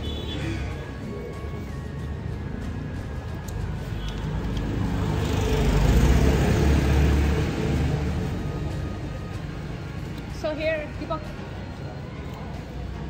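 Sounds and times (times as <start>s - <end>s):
vehicle passing on street: 0.0s - 13.0s.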